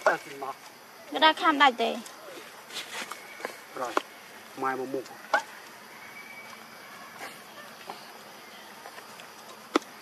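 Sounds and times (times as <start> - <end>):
rustling: 2.0 - 5.7.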